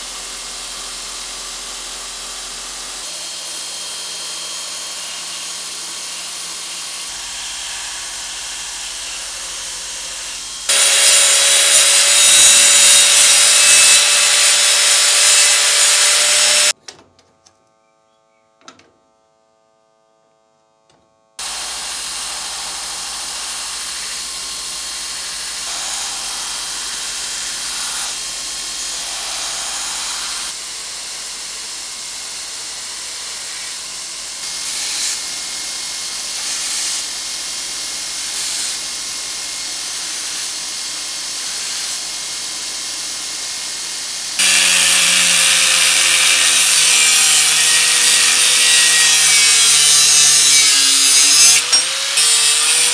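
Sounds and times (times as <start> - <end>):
belt grinder sanding wood: 3.0 - 16.7, 41.3 - 52.9.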